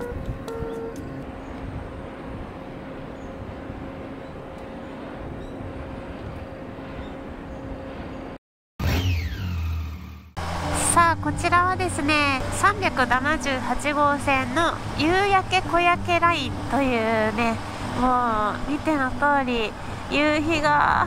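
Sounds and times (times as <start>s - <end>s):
wind turbine low hum: 0.0s - 8.4s, 10.4s - 21.0s.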